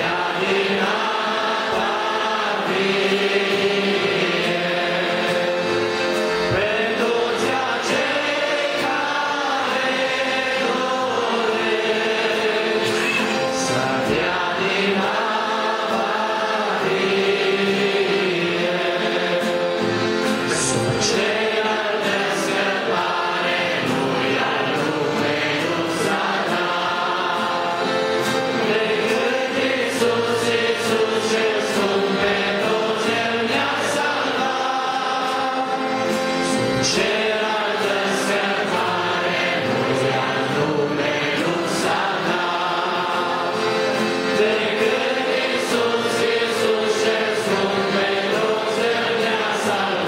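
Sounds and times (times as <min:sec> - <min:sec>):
congregation singing a hymn: 0:00.0 - 0:50.0.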